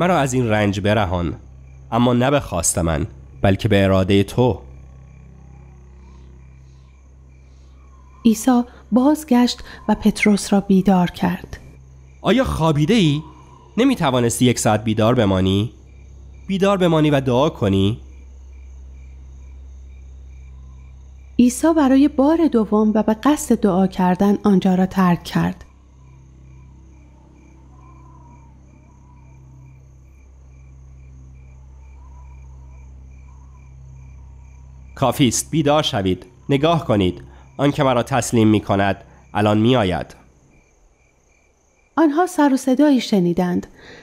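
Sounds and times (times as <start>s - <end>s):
low steady hum: 0.0s - 43.8s
crickets chirping: 0.0s - 44.0s.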